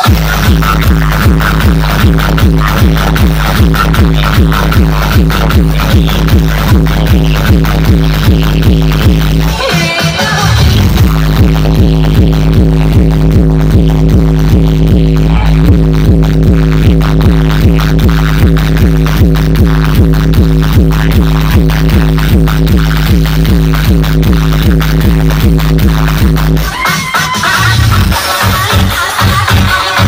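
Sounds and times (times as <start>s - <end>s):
loud dj music with heavy bass: 0.0s - 30.0s.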